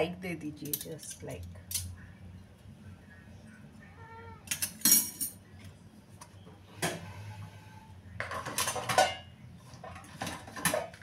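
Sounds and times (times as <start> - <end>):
utensils clattering into dish rack: 4.5 - 5.4, 8.3 - 9.3.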